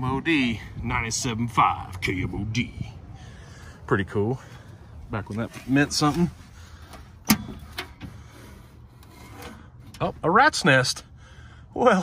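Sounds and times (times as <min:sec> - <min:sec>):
metal glove box rubbing and scraping: 0:05.4 - 0:10.6.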